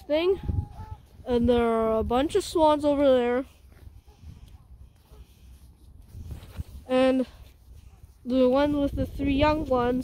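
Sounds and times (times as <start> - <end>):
faint wind: 0.0 - 10.0.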